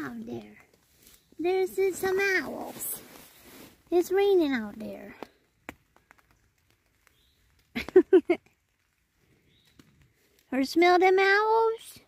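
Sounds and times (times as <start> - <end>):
woman laughing: 7.7 - 8.4.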